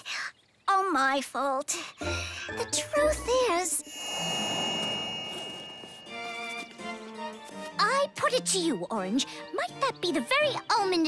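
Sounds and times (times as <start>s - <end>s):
shimmering ring sound effect: 3.8s - 7.3s.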